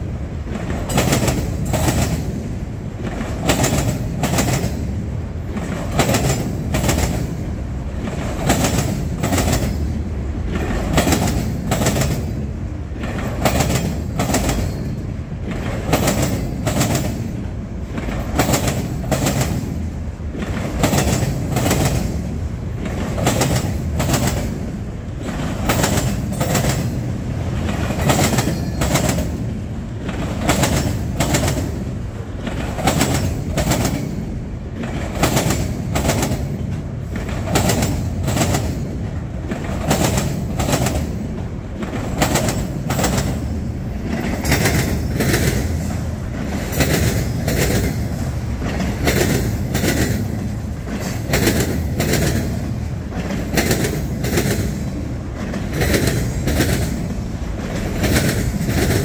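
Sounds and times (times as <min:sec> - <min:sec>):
freight train rumbling past: 0:00.0 - 0:59.0
wheels clacking over rail joints: 0:00.0 - 0:59.0.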